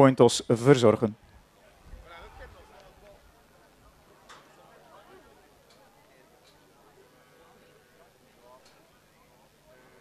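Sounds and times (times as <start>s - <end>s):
faint distant voices talking: 1.2s - 10.0s.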